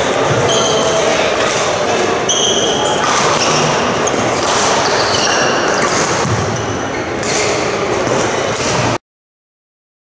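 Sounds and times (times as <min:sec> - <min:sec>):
reverberant sports hall noise: 0:00.0 - 0:09.0.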